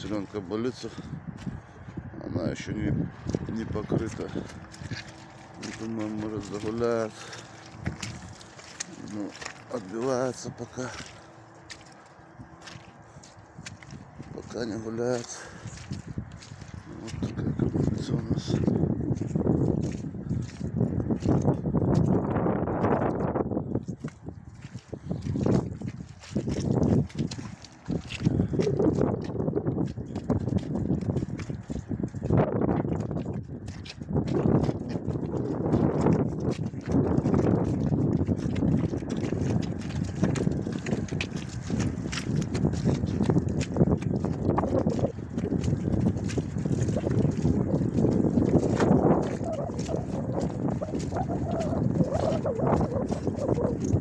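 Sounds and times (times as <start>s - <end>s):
hooves on muddy ground: 0.0s - 54.0s
wind noise on microphone: 0.0s - 54.0s.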